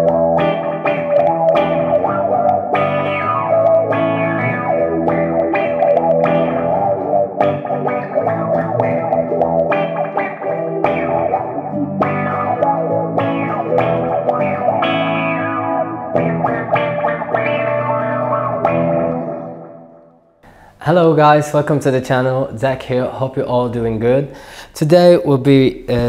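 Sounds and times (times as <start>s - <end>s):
filtered electric guitar: 0.0s - 20.3s.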